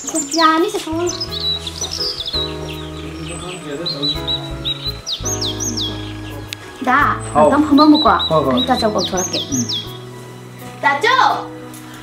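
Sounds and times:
small bird chirping: 0:00.0 - 0:10.7.

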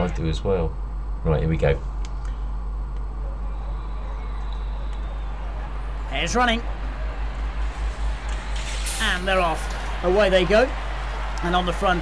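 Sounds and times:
low pulsing mechanical rumble: 0:00.0 - 0:10.8.

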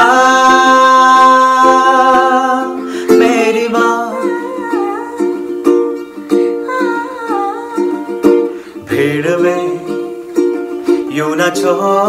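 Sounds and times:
ukulele strumming chords: 0:00.0 - 0:12.0.

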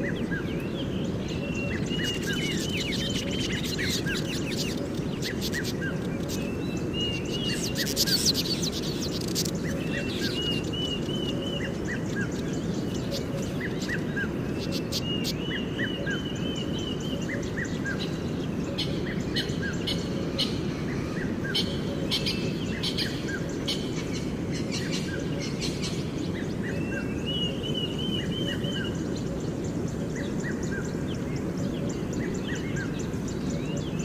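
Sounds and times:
bird chirping calls: 0:00.0 - 0:34.0
low background noise: 0:00.0 - 0:34.0.

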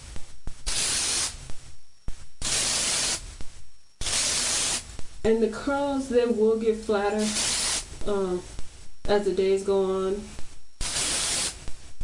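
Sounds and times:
spray bottle hissing: 0:00.6 - 0:01.4, 0:02.4 - 0:03.2, 0:04.0 - 0:04.8, 0:07.2 - 0:07.9, 0:10.8 - 0:11.6.

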